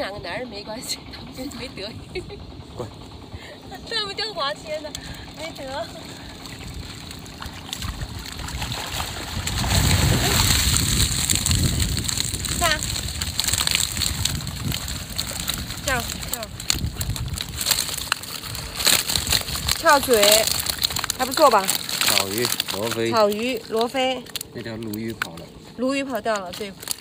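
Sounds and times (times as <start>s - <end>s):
water sloshing and splashing: 3.6s - 27.0s.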